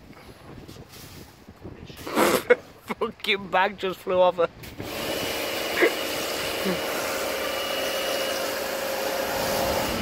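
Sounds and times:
pressure washer spray: 4.8 - 10.0.

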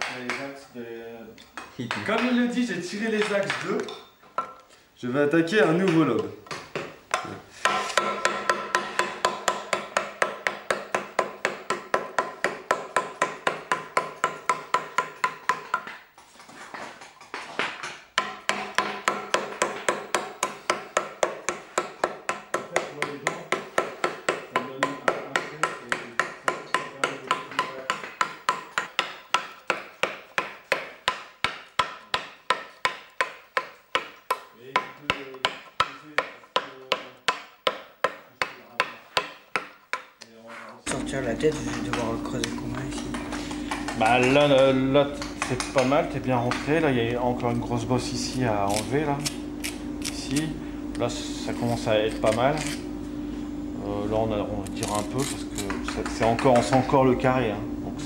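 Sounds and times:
mallet striking stone chisel: 5.9 - 16.0, 17.6 - 40.1.

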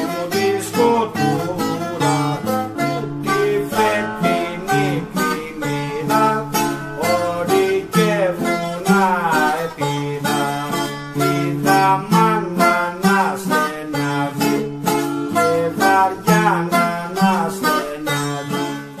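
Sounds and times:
plucked bouzouki melody: 0.0 - 19.0
strummed acoustic guitar: 0.0 - 19.0.

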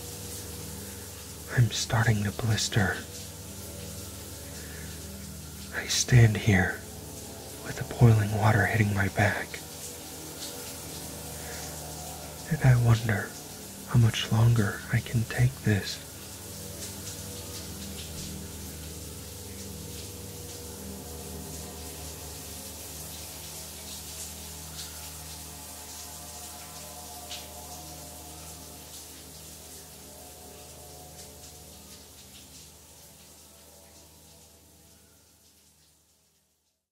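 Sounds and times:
shower spray hissing: 0.0 - 36.6
droning ambient music: 0.0 - 36.7.

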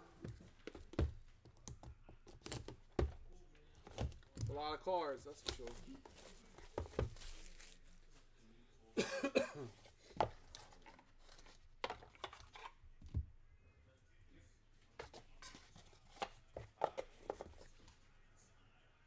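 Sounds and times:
cardboard boxes knocking and rustling: 0.3 - 1.3, 5.4 - 7.6
person coughing: 9.0 - 9.8.

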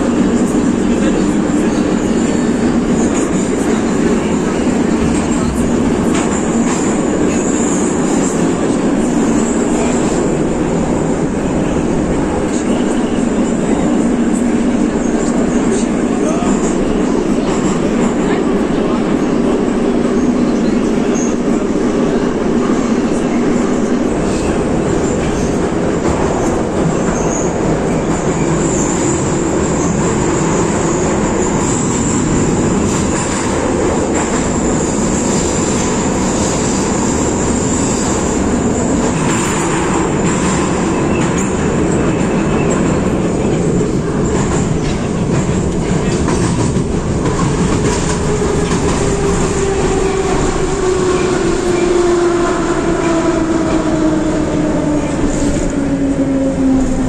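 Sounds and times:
wheels roaring on rails: 0.0 - 57.0.

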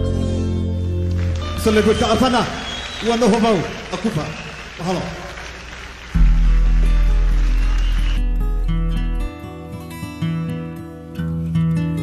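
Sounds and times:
song with loud low note: 6.2 - 11.0.

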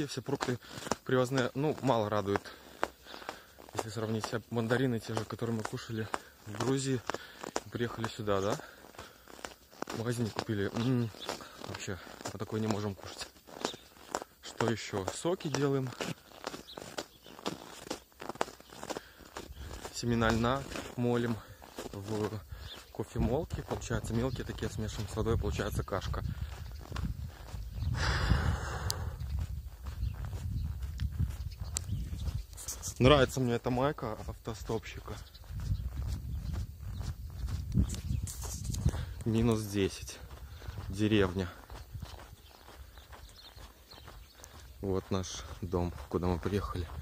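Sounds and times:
bare feet walking on snow: 0.0 - 47.0
low microphone rumble: 26.2 - 32.5.

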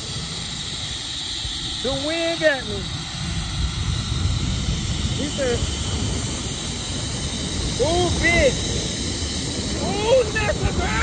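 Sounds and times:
hiss of rushing air: 0.0 - 11.0
wind buffeting microphone: 0.0 - 11.0.

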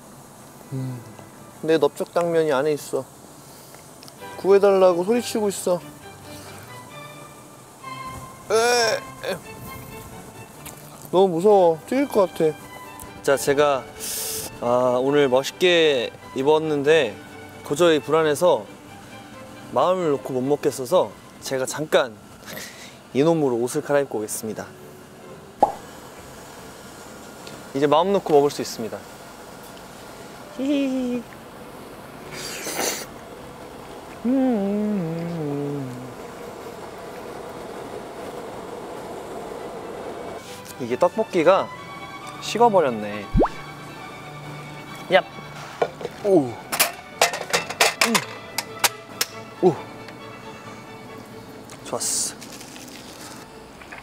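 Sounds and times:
low background hiss: 0.0 - 32.3
voice humming: 0.7 - 1.2, 34.2 - 36.2
background music: 4.2 - 22.8, 40.4 - 54.0
pop sound effect: 25.6 - 25.8, 43.3 - 43.7.

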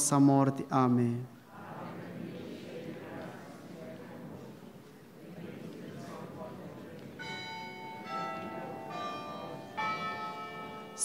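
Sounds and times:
church bells chiming: 6.0 - 11.0.

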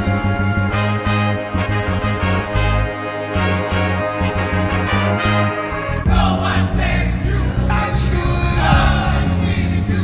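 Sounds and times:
song with heavy bass: 0.0 - 10.0.

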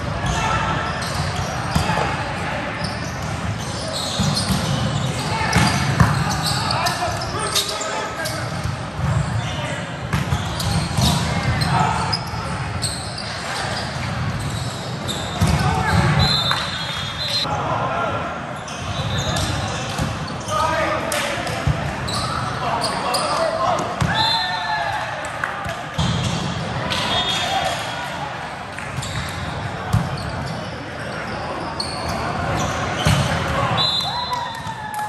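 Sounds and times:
crowd voices in gym: 0.0 - 35.0
players shouting calls: 20.4 - 25.9, 26.7 - 28.5.

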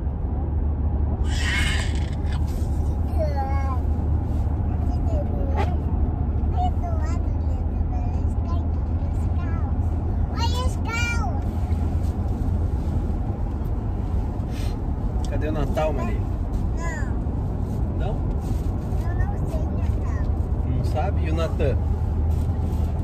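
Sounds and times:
car cabin rumble: 0.0 - 23.0.

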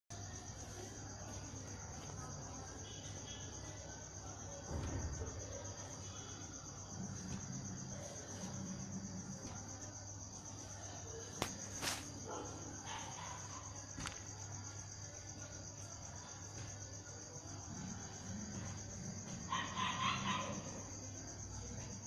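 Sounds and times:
high-pitched insect trill: 0.1 - 22.0.

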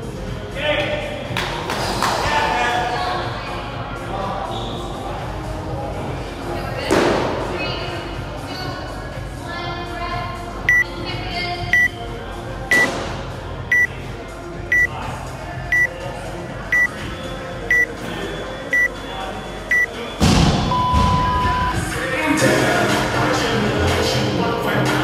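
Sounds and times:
long low timer beep: 10.7 - 10.9, 11.7 - 11.9, 13.7 - 13.9, 14.7 - 14.9, 18.7 - 18.9, 20.7 - 21.8
short high timer beeps: 11.7 - 11.9, 20.7 - 21.8.

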